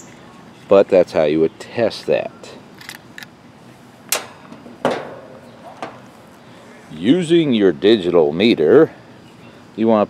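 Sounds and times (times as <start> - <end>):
knocks on sheet metal: 4.1 - 6.0.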